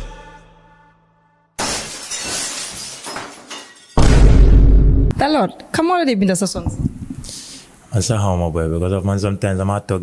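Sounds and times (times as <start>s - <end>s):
glass breaking crash: 1.6s - 4.6s.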